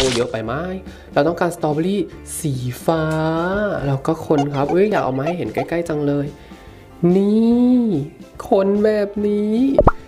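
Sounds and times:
background music: 0:00.1 - 0:10.0
man's drawn-out voice: 0:04.4 - 0:05.8.

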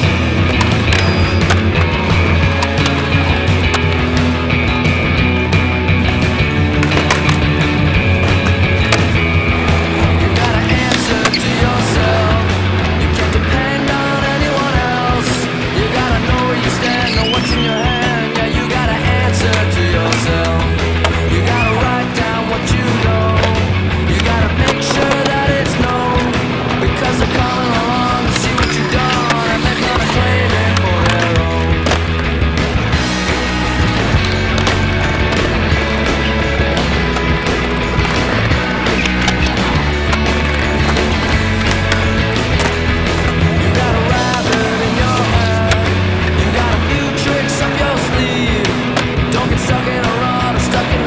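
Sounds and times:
rock music: 0:00.0 - 0:51.0
skateboard clacking: 0:00.0 - 0:51.0
skateboard wheels rolling on concrete: 0:00.0 - 0:51.0.

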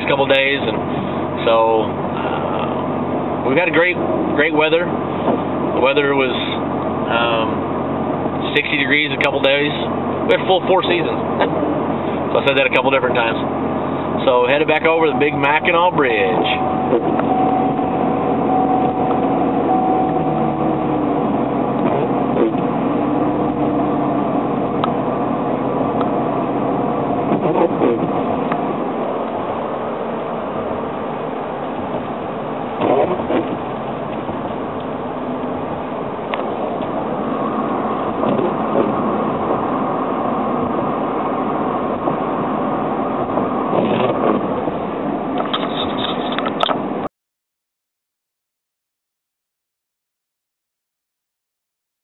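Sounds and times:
road and engine noise inside vehicle: 0:00.0 - 0:47.1.

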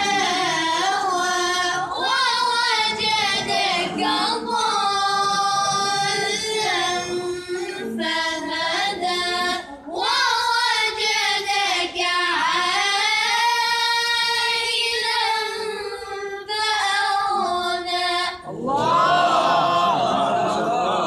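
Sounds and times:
boy reciting melodically: 0:00.0 - 0:20.0.

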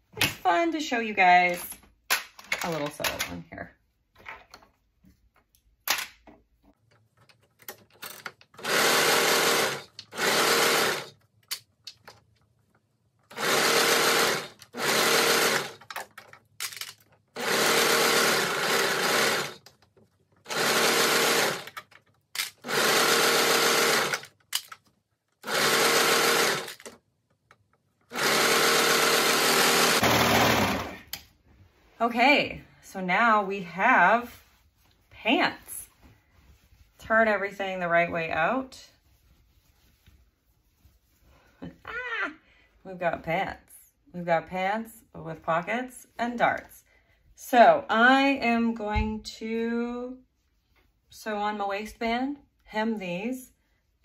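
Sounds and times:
overlocker stitching: 0:06.7 - 0:12.2, 0:13.3 - 0:31.2.

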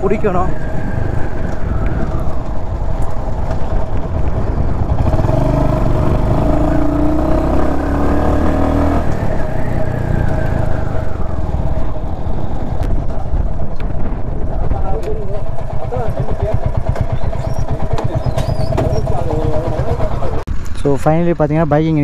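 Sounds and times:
motorcycle engine slowing and idling: 0:00.0 - 0:22.0.

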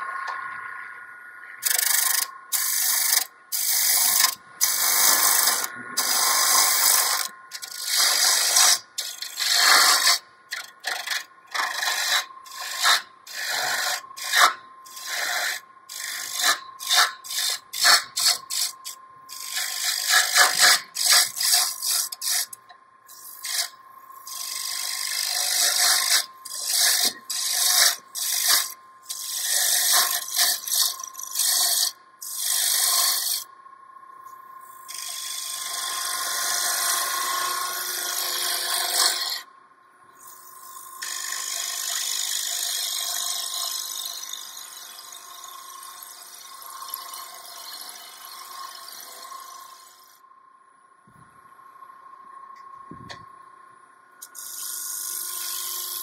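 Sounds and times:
lathe gouge scraping wood: 0:01.6 - 0:33.4, 0:34.9 - 0:39.4, 0:41.0 - 0:50.1
faint steady tone: 0:20.8 - 0:27.4, 0:33.4 - 0:36.0, 0:49.5 - 0:55.7.

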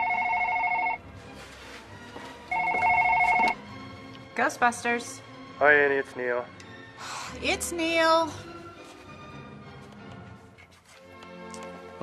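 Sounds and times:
telephone ringing two-tone trill: 0:00.0 - 0:01.0, 0:02.5 - 0:03.6.

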